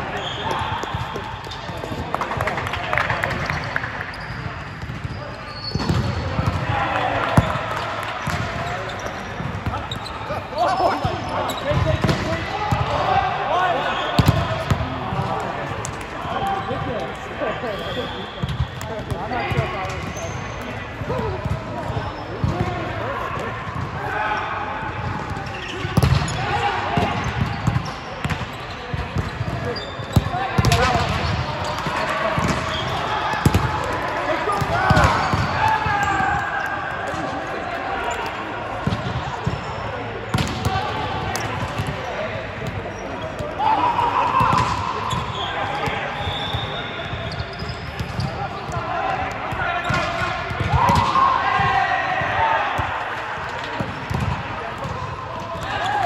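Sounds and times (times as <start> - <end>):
players calling and chatting: 0.0 - 56.0.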